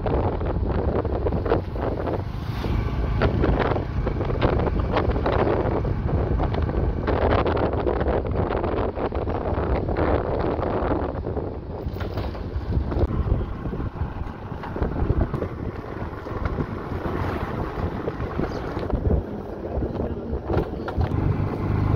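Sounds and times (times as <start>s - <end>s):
motorcycle engine rumble: 0.0s - 21.9s
wind buffeting microphone: 0.0s - 21.9s.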